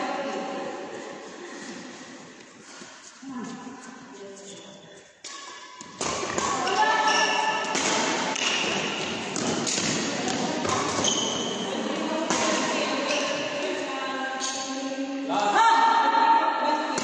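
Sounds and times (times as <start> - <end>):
voices in a sports hall: 0.0 - 17.0
badminton shuttlecock strikes: 5.2 - 11.4.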